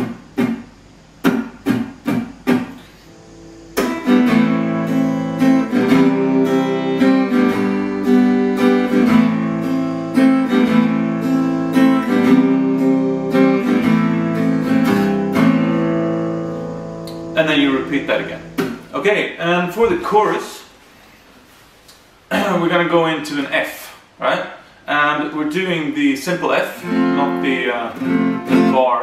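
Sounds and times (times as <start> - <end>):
acoustic guitar strumming: 0.0 - 20.1, 26.6 - 29.0.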